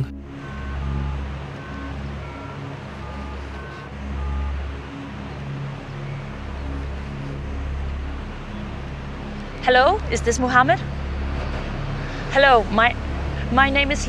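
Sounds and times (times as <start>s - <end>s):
low rumble: 0.0s - 14.0s.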